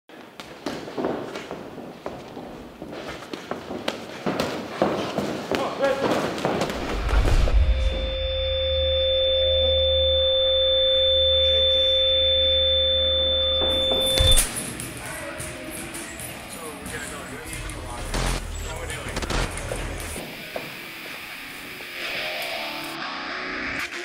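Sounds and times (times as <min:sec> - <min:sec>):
high pure ringing tones: 0:06.8 - 0:14.5
steady low drone: 0:06.8 - 0:14.5.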